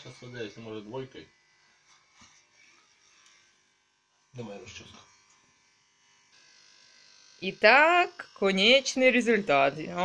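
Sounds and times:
electric hair clippers buzzing: 0.0 - 10.0.

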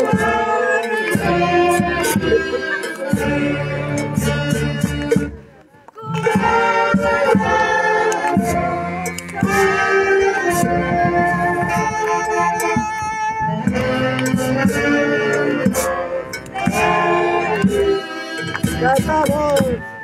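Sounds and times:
live band with plucked strings: 0.0 - 20.0
people clapping along: 0.2 - 3.6, 4.6 - 5.3, 5.9 - 10.8, 13.4 - 19.8.

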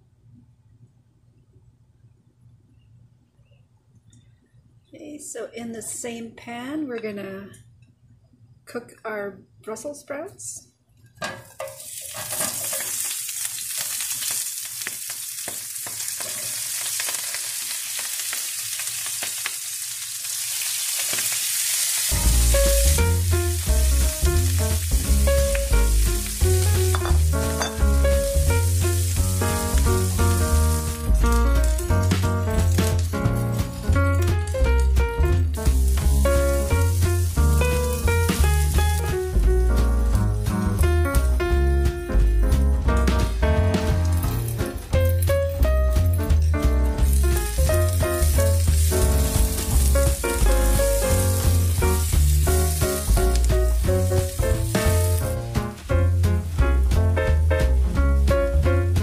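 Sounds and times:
vegetables sizzling in a frying pan: 11.3 - 41.2, 47.0 - 56.6
background music with bass: 22.1 - 59.0.

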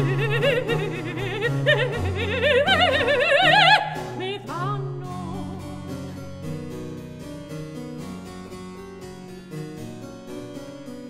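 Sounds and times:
mezzo-soprano singing: 0.0 - 6.1
harpsichord: 0.0 - 11.0.

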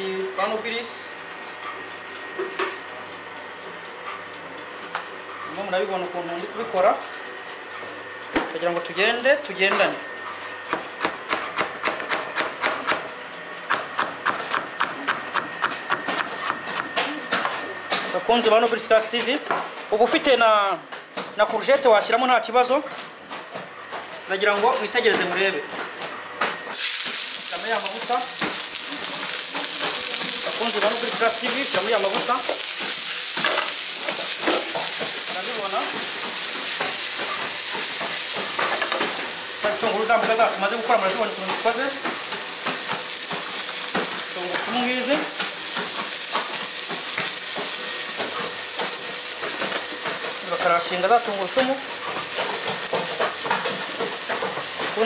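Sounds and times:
knife chopping on cutting board: 10.7 - 13.1, 13.7 - 17.6
vegetables sizzling in frying pan: 26.7 - 55.0.

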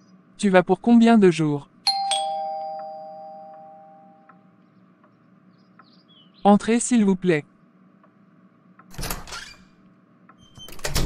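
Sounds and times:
two-note doorbell chime: 1.9 - 4.3.

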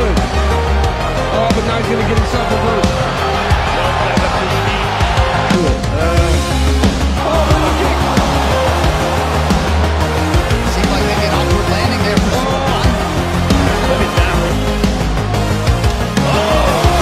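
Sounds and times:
music with deep bass: 0.0 - 17.0.

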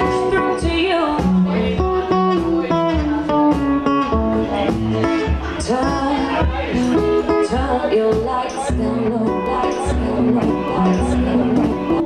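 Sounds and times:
acoustic guitar reggae strumming: 0.0 - 12.0
low stompbox beat: 0.0 - 12.0.

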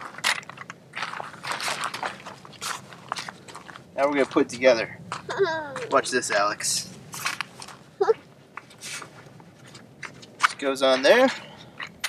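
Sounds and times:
metal chair frame on gravel: 0.0 - 7.8, 8.6 - 12.0.

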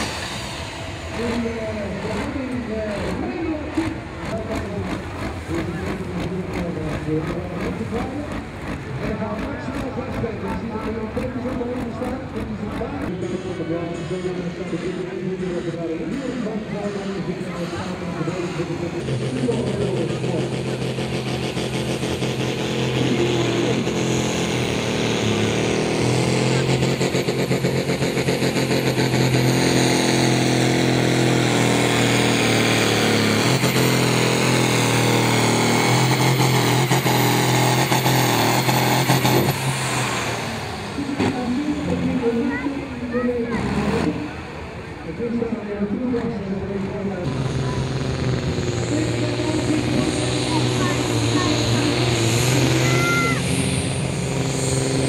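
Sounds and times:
tractor diesel engine running hard: 0.0 - 55.0.

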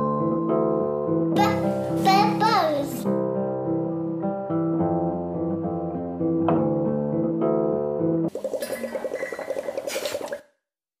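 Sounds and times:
water bubbling plops: 8.3 - 10.5.

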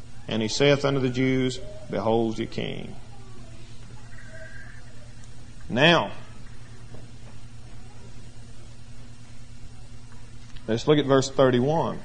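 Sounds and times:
low electrical hum with hiss: 0.0 - 12.0.

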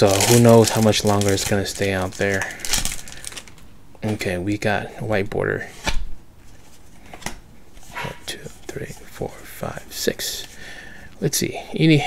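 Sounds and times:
wrapper snapping: 0.0 - 3.7.

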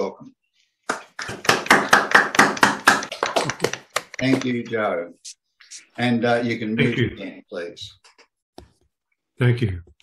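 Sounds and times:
hand clapping: 0.8 - 4.6.

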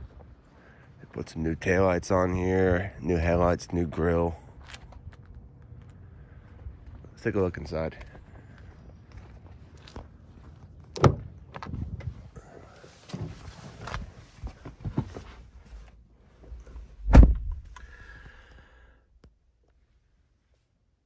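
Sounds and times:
car door shutting thump: 11.0 - 11.3, 17.0 - 17.8.

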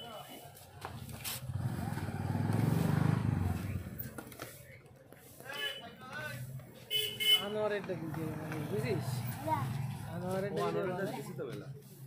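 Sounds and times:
vehicle engine passing by: 1.0 - 4.3, 7.6 - 11.2.

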